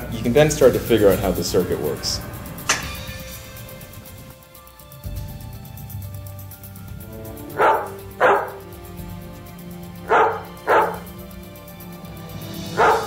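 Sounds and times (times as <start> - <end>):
background music: 0.0 - 13.0
dog barking: 7.5 - 8.8, 10.0 - 11.2, 12.6 - 13.0.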